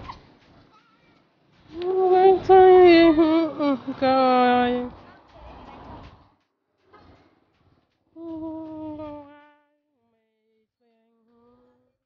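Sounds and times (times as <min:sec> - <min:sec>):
woman singing unaccompanied: 0:01.8 - 0:04.9, 0:08.2 - 0:12.0.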